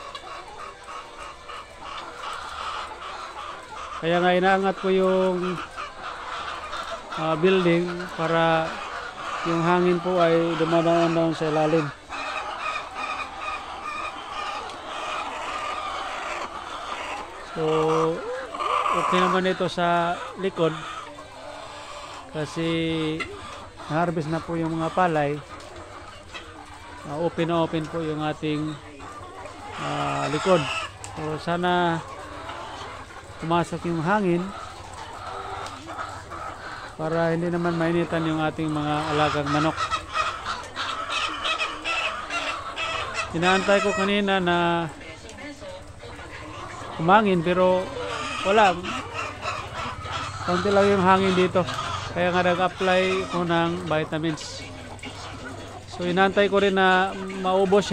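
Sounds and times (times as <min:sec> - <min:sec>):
hens clucking and calling: 0:00.0 - 0:57.9.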